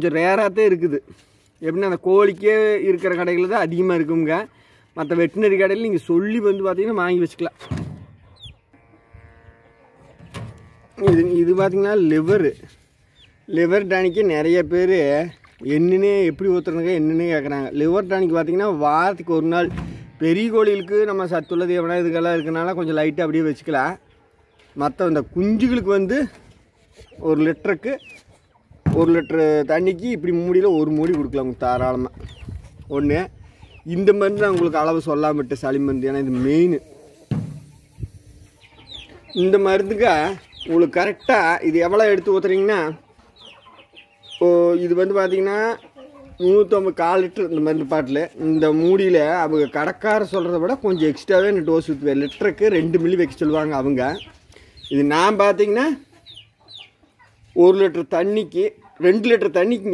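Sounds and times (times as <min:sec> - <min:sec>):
chicken calls: 0:00.0 - 0:59.9.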